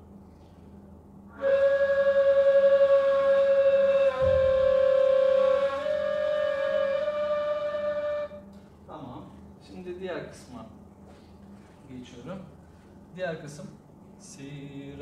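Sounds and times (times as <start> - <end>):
breathy reed flute notes: 1.3 - 8.5.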